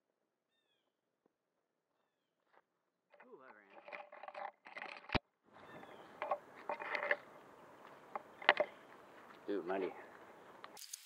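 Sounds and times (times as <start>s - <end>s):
person talking: 3.2s - 3.9s, 9.4s - 10.1s.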